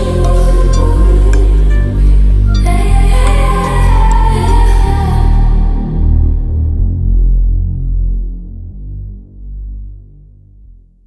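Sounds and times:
song with deep bass notes: 0.0s - 11.0s.

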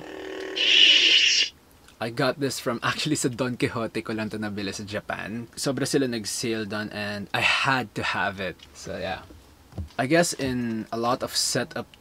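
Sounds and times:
toy lightsaber humming: 0.0s - 1.5s
lightsaber hissing power-down: 0.6s - 1.5s.

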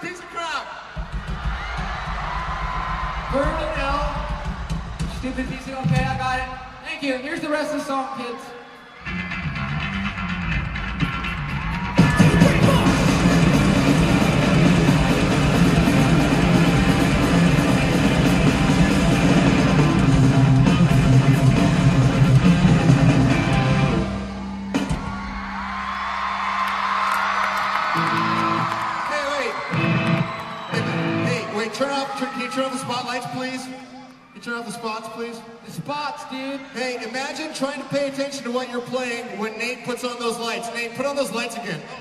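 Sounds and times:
crowd yelling: 0.0s - 42.0s
drums: 0.0s - 42.0s
distorted electric guitar: 9.1s - 24.2s
bass guitar: 9.1s - 24.9s.

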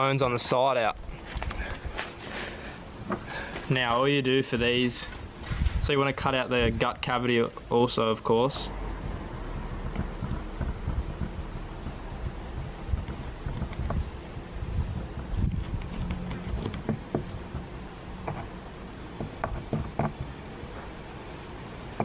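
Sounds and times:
wind buffeting microphone: 8.7s - 17.7s
knife cutting on cutting board: 15.4s - 18.5s.

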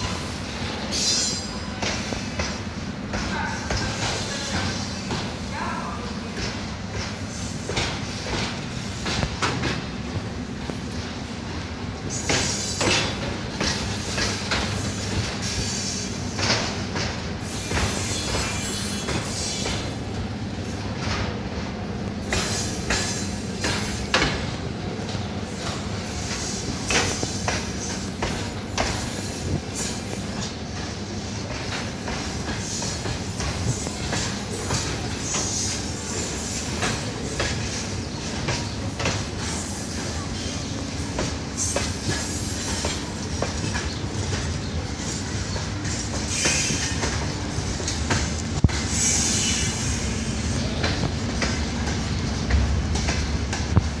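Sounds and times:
train wheels clacking on rails: 0.0s - 54.0s.

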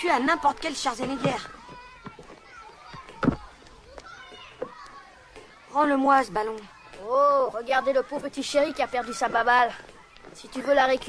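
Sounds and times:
children's voices: 0.0s - 11.0s.

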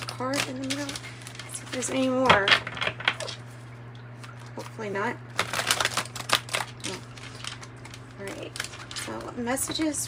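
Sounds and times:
cards being shuffled by hand: 0.0s - 3.6s, 4.2s - 10.0s.

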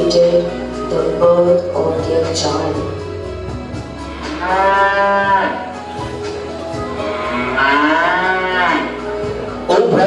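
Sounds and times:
soft background music: 0.0s - 10.0s
cow mooing: 4.1s - 5.7s, 7.0s - 9.1s.

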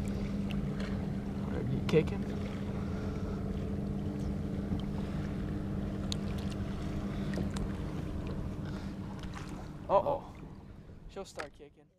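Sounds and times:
boat engine hum: 0.0s - 11.9s
faint water drips and splashes: 3.8s - 10.6s.

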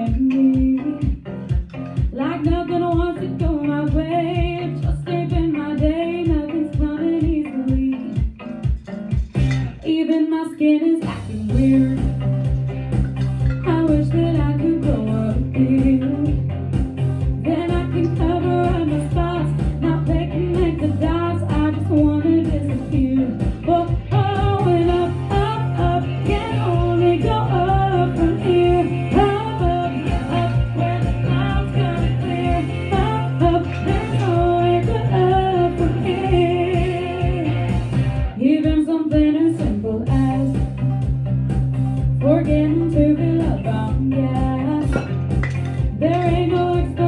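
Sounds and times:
woman singing: 0.0s - 1.2s, 2.0s - 8.4s, 9.7s - 12.2s, 13.6s - 16.5s, 17.4s - 40.7s, 42.2s - 47.0s
instrumental accompaniment: 0.0s - 38.5s, 39.6s - 47.0s.

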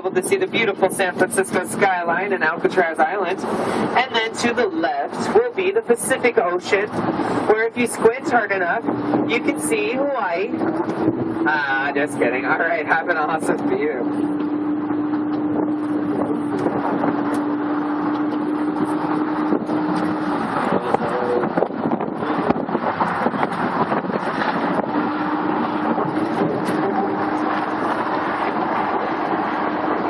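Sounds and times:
droning hum: 0.0s - 30.0s
wind and road noise on a bus: 0.0s - 30.0s.

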